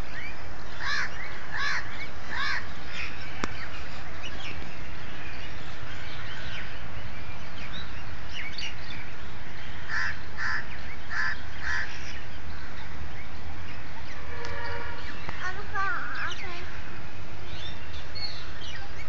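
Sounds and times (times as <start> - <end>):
small birds chirping: 0.0 - 19.0
crows cawing: 0.8 - 2.7, 9.9 - 12.2.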